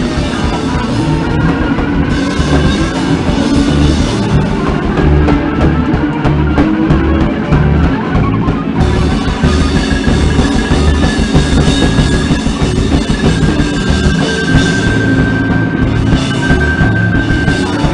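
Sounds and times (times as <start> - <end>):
drum kit pounding: 0.0 - 17.9
high held tone: 0.0 - 17.9
wall of amplified noise: 0.0 - 17.9.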